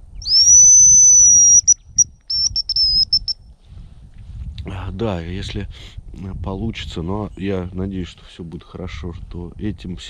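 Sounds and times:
decoy whistle: 0.2 - 3.4.

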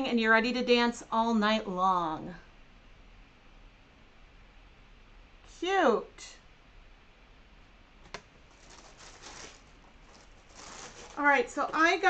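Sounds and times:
paper and packaging rustling: 8.3 - 12.0.

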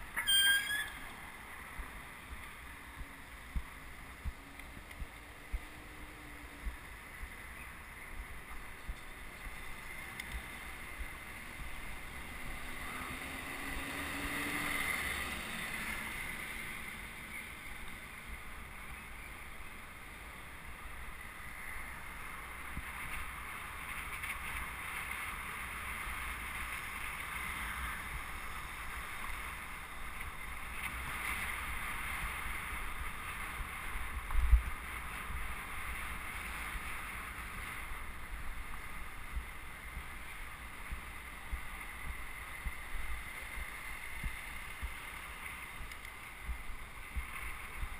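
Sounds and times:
road rumble: 0.0 - 47.9
wind buffeting the microphone: 20.5 - 47.9.

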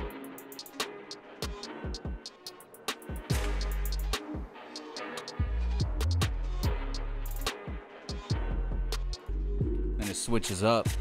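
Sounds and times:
hi-hat rolls: 0.0 - 9.4
hip-hop beat: 0.0 - 11.0.

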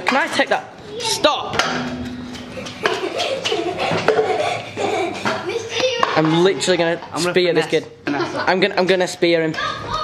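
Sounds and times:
people laughing: 2.3 - 6.0, 8.1 - 8.8
people talking: 3.0 - 10.0.

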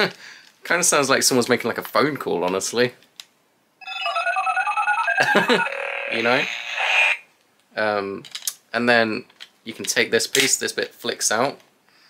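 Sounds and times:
electronic beeping tune: 3.8 - 6.5.

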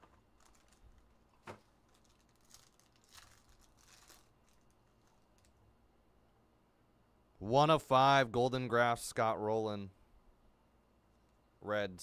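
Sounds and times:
plastic card sleeves crinkling: 0.0 - 5.6.

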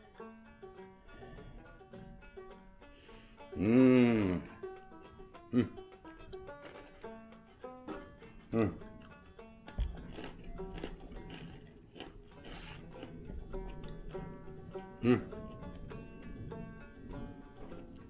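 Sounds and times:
banjo music: 0.0 - 18.0
man humming mm: 3.5 - 4.7, 5.5 - 5.9, 8.4 - 8.9, 15.0 - 15.6.

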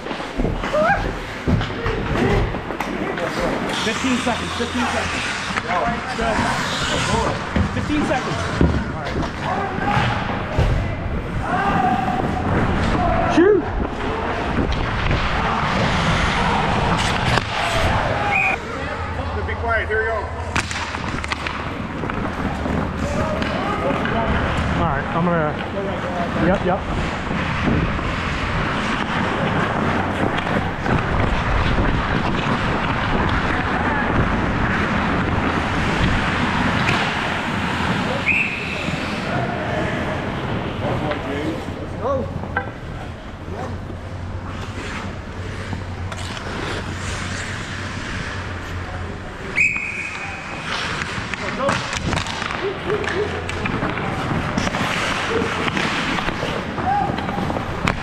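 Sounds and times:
sticks and puck clacking: 0.0 - 18.6, 20.4 - 58.0
skates scraping ice: 0.0 - 58.0
players shouting: 9.4 - 24.8, 32.5 - 40.7, 49.5 - 58.0
referee whistle: 18.3 - 18.6, 38.2 - 38.9, 49.6 - 50.4.

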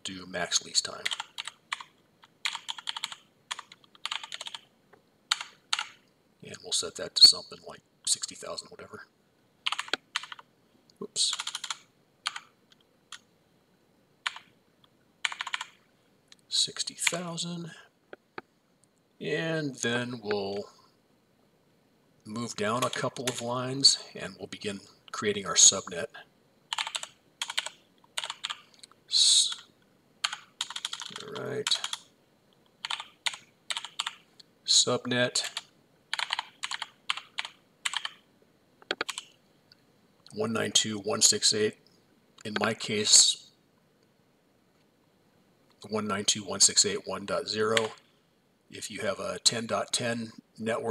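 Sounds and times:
computer keyboard typing: 0.9 - 4.7, 5.3 - 6.0, 9.6 - 10.5, 11.3 - 13.2, 14.2 - 14.5, 15.2 - 15.8, 17.0 - 17.2, 22.7 - 23.4, 26.7 - 28.7, 30.2 - 32.1, 32.8 - 34.2, 35.5 - 38.2, 38.8 - 39.3, 47.7 - 48.0.

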